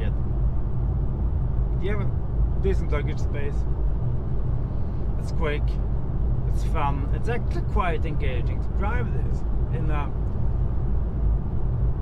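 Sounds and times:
road and tyre rumble in car: 0.0s - 12.0s.

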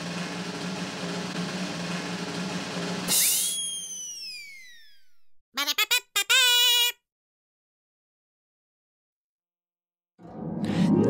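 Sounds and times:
snare drum roll: 0.0s - 3.2s.

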